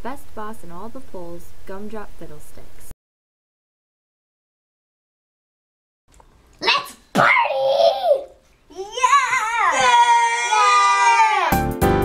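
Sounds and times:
children cheering and laughing: 7.2s - 11.7s.

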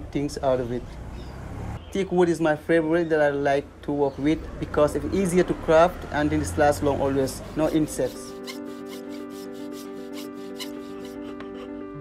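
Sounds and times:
background music with held notes: 6.6s - 12.0s
hand saw cutting wood: 6.9s - 11.8s.

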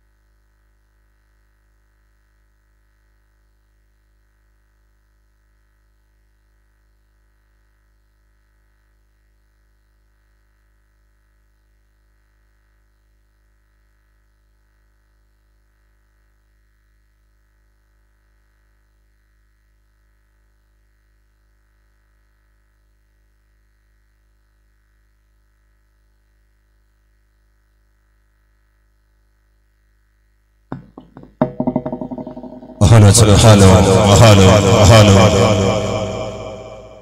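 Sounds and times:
steady low hum: 30.7s - 37.0s.

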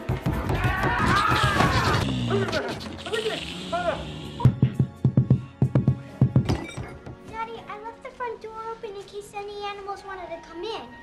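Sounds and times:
film score music: 0.0s - 11.0s
heavy thumps: 4.4s - 7.4s.

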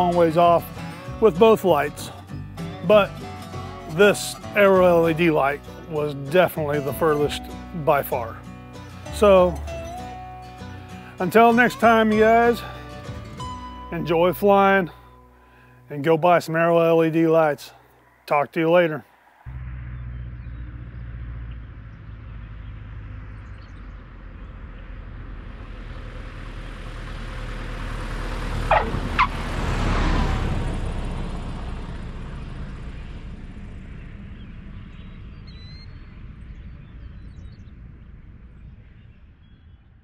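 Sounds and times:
light aircraft engine drone: 19.6s - 29.2s, 30.0s - 40.0s.

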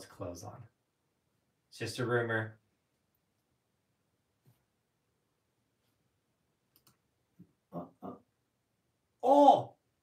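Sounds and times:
faint clicks: 6.7s - 7.0s
man murmuring: 7.7s - 8.4s.

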